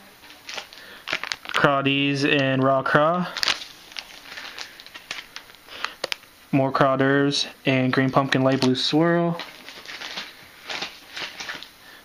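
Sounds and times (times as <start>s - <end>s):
plastic packaging crinkling: 0.2s - 6.3s, 8.4s - 11.8s.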